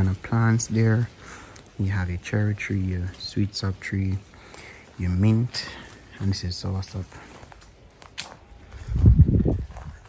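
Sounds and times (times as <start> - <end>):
footsteps on leaves: 0.0 - 10.0.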